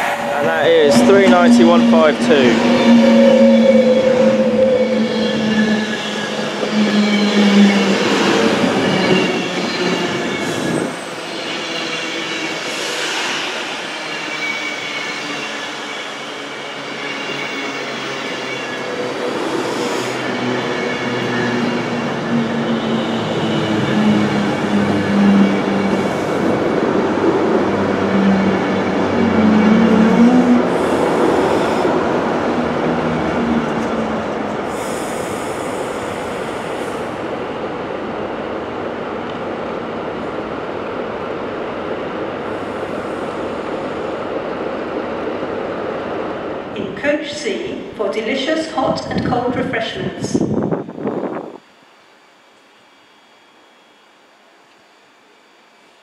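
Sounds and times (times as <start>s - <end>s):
train knocks: 0.0s - 4.6s
electric train traction whine: 0.0s - 56.0s.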